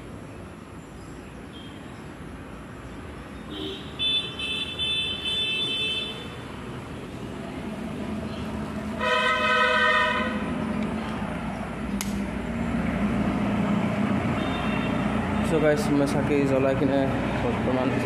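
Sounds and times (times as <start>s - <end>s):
sharp click: 11.9s - 12.3s.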